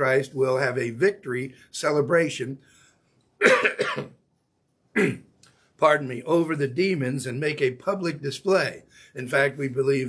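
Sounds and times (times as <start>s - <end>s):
man coughing: 3.4s - 4.1s, 5.0s - 5.2s.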